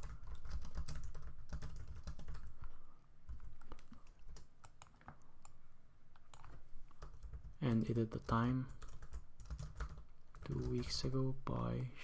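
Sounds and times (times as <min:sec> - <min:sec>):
computer keyboard typing: 0:00.0 - 0:02.7, 0:03.3 - 0:05.6, 0:06.3 - 0:11.0.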